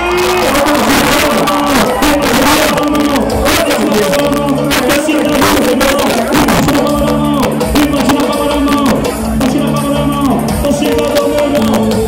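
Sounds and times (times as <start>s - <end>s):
drums striking: 0.0s - 12.0s
live pop band playing: 0.0s - 12.0s.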